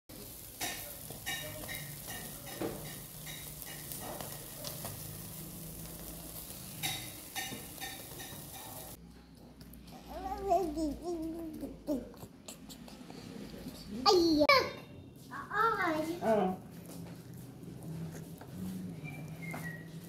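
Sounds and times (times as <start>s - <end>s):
fish sizzling on a grill: 0.1s - 9.0s.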